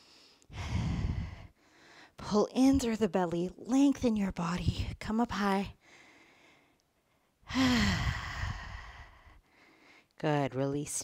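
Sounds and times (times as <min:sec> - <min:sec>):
woman's breathy sigh: 0:00.5 - 0:01.5, 0:07.5 - 0:09.4.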